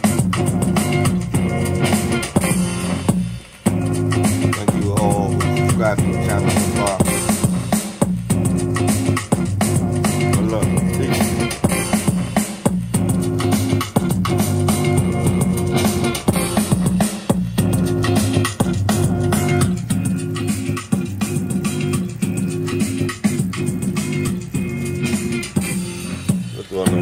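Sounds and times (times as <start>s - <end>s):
hip-hop beat with hard drums: 0.0s - 27.0s.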